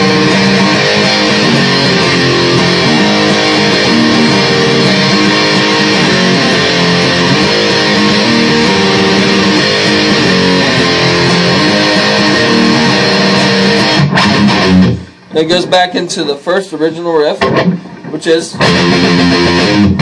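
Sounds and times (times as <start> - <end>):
distorted electric guitar riff: 0.0 - 20.0.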